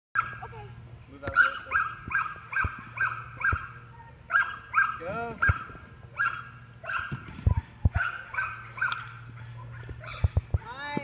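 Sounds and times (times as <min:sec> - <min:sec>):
dog barking sharply: 0:01.3 - 0:07.2.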